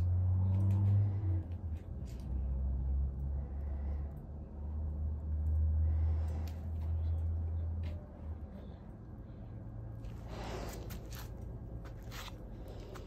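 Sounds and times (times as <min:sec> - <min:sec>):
low uneven rumble: 0:00.0 - 0:13.0.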